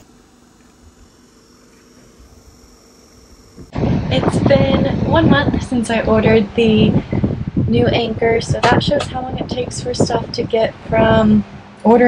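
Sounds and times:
low hum: 0.0 - 12.0
wind rushing across microphone: 3.5 - 12.0.

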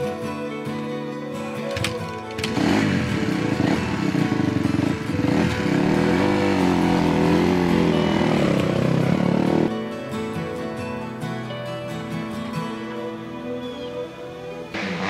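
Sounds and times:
guitar music: 0.0 - 15.0
dirt bike engine revving: 2.4 - 9.7, 14.8 - 15.0.

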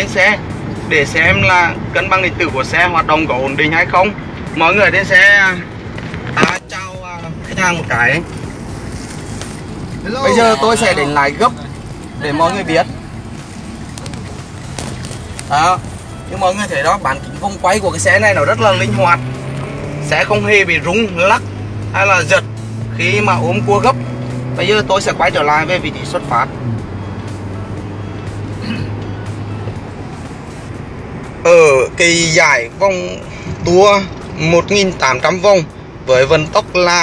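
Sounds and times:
road and engine noise in car cabin: 0.0 - 37.0.

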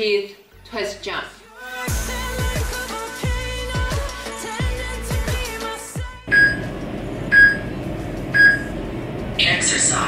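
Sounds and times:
pop music: 1.0 - 8.5
short high electronic beeps: 6.3 - 6.7.

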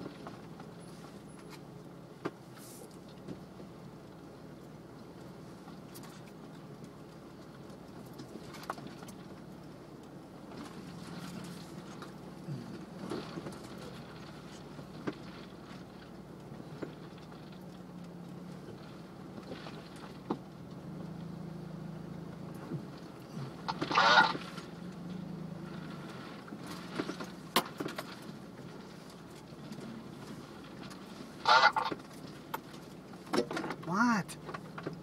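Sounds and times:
vehicle engine drone: 0.0 - 35.0.

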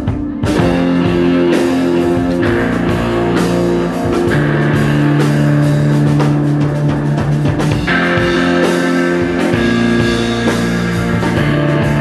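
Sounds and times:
drum kit hits: 0.0 - 12.0
electric guitar sustained notes: 0.0 - 12.0.

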